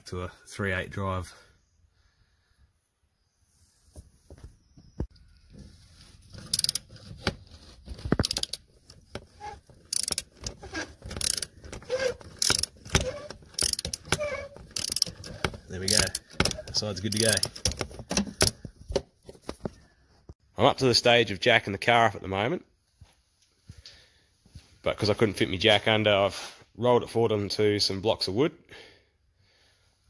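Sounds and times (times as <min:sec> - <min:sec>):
ratchet clicking: 0:06.4 - 0:06.9, 0:08.2 - 0:17.8.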